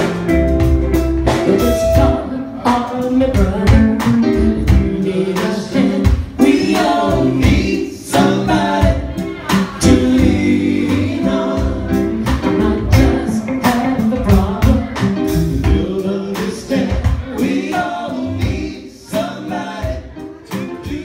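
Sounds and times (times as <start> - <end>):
electric guitar: 0.0 - 5.1
bass notes: 0.0 - 21.0
steady beat: 0.0 - 21.0
person singing: 1.3 - 21.0.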